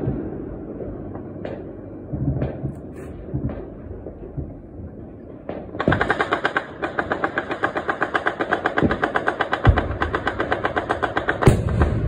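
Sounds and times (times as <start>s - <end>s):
rapid gunfire bangs: 5.5s - 12.0s
deep booms: 11.5s - 12.0s.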